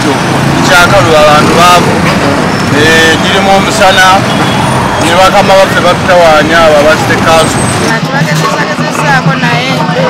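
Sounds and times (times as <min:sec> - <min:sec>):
steady background noise: 0:00.0 - 0:10.0
man speaking: 0:00.6 - 0:02.0, 0:02.7 - 0:04.2, 0:05.0 - 0:07.6.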